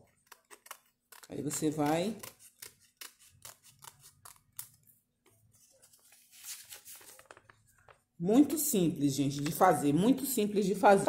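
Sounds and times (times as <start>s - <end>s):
scissors snipping paper: 0.0s - 4.8s.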